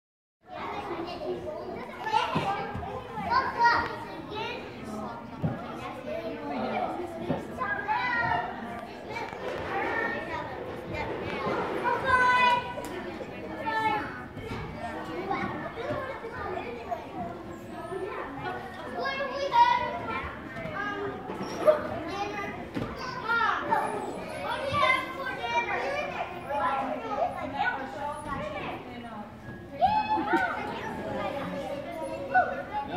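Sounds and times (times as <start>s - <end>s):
children playing and calling out: 0.5s - 32.9s.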